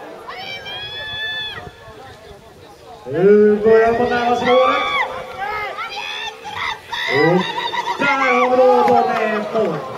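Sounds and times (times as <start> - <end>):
people shouting and cheering: 0.0 - 2.2, 3.1 - 9.9.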